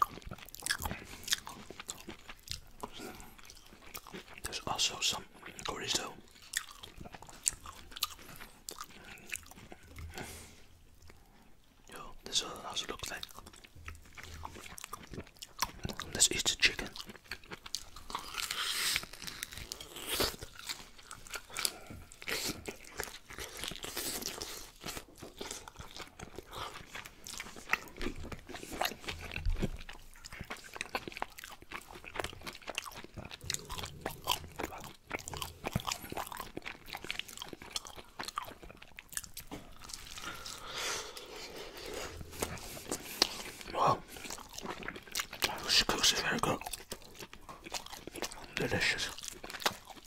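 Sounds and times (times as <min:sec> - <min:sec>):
open-mouth chewing and lip smacking: 0:00.0 - 0:50.0.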